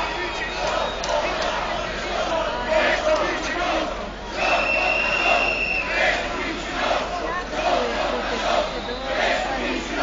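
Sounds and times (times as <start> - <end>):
crowd chanting and shouting: 0.0 - 10.0
high whistling tone: 4.4 - 5.9.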